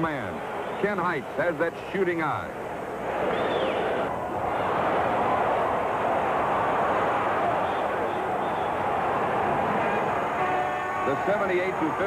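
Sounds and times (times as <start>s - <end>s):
arena crowd cheering: 0.0s - 12.0s.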